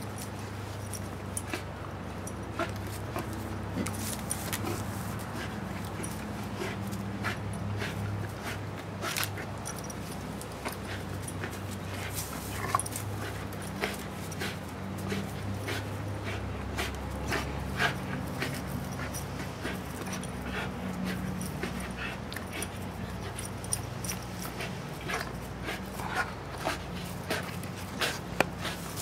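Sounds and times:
rope rustles and clicks: 0.0s - 29.0s.

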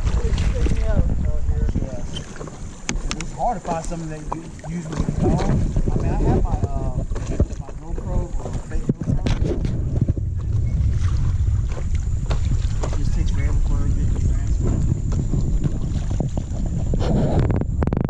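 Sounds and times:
water splashing: 0.0s - 18.0s
wind rumbling on microphone: 0.0s - 18.0s.

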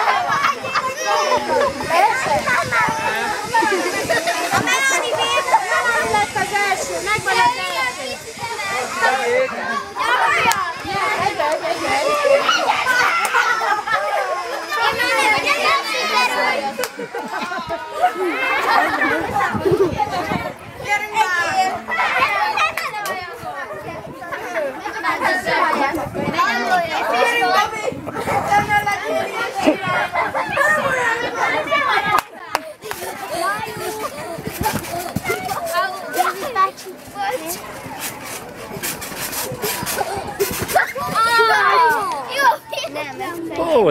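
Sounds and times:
crowd of children talking: 0.0s - 43.9s
short scraping noises: 32.9s - 42.1s.

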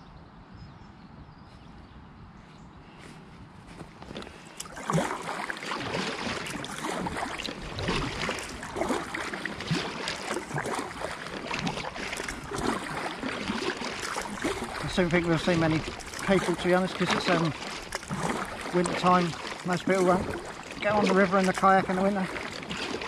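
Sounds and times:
paddle splashing in water: 4.0s - 23.0s
water dripping: 4.6s - 23.0s.

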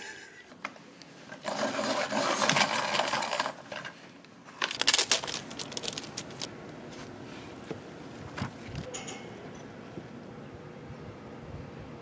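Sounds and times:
ice cubes rattling in tumbler: 1.4s - 3.9s, 4.6s - 6.5s.

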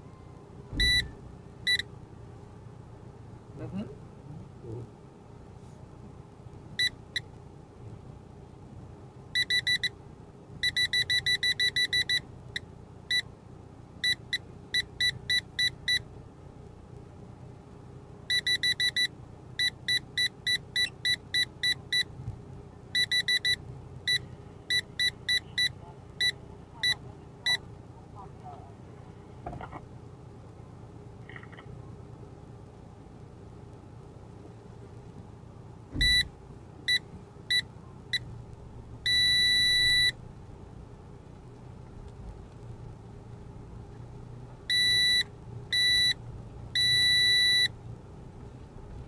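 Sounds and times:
electronic warning beeps: 0.8s - 1.9s, 9.4s - 9.9s, 10.6s - 12.2s, 18.3s - 22.1s, 23.0s - 27.6s, 36.0s - 36.3s, 36.9s - 38.2s, 39.0s - 40.2s, 44.7s - 46.2s, 46.8s - 47.7s.

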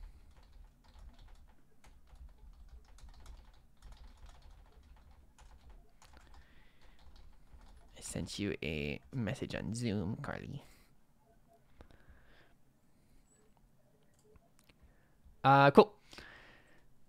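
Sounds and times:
typing on keyboard: 0.0s - 8.3s.

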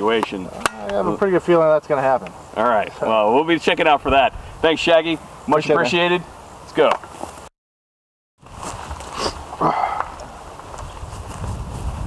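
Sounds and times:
faint outdoor background noise: 0.0s - 7.5s, 8.4s - 12.0s.

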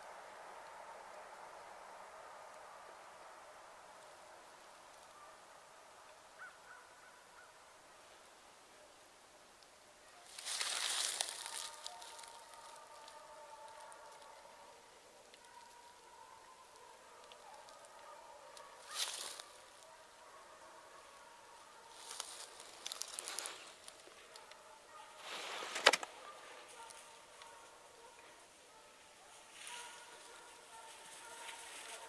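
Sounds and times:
hunting dogs baying: 6.4s - 7.6s, 10.2s - 32.0s.

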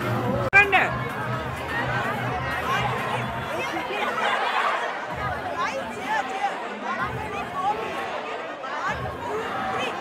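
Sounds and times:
girls chattering: 0.6s - 10.0s.

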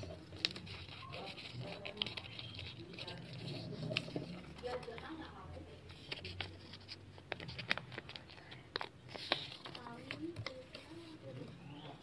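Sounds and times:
paper folding and crackling: 0.0s - 12.0s.

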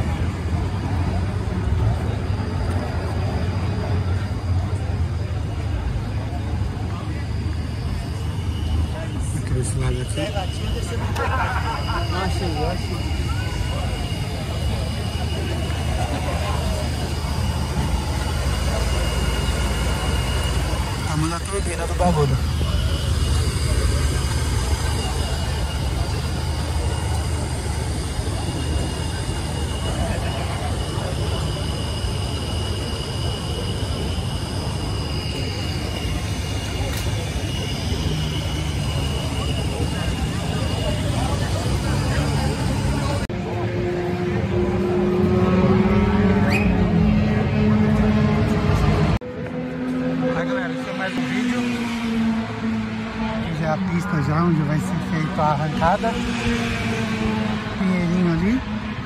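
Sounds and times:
crowd chatter: 0.0s - 59.0s
faint high whine: 0.0s - 59.0s.

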